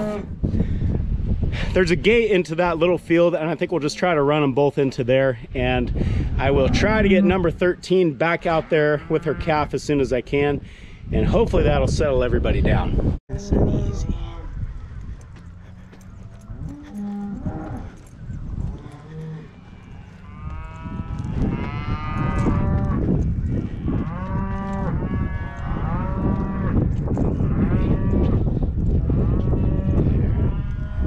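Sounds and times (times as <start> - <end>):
cattle mooing: 0.0 - 0.3, 6.4 - 7.7, 15.7 - 18.0, 18.8 - 26.8, 27.4 - 28.4.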